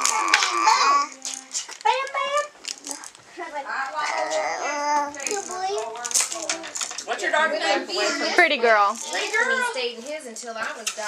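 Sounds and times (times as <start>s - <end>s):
young children babbling: 0.0s - 1.4s, 4.0s - 5.9s.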